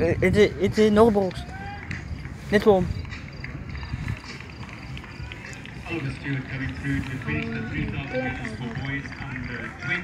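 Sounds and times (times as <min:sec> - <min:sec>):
indistinct crowd voices: 0:01.4 - 0:10.0.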